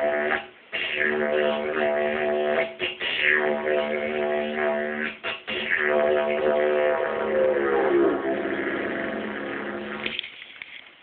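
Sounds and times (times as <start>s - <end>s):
didgeridoo droning: 0.0s - 10.2s.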